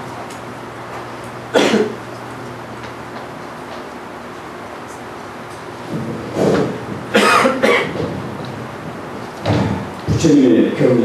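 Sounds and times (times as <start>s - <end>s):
man coughing into microphone: 1.5s - 2.0s, 7.1s - 8.1s.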